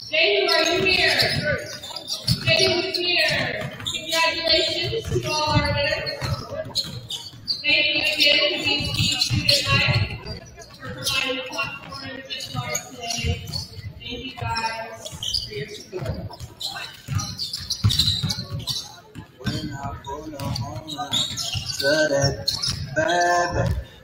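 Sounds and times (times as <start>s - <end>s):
indistinct voices: 0.0s - 24.0s
basketballs bouncing on hardwood: 0.1s - 24.0s.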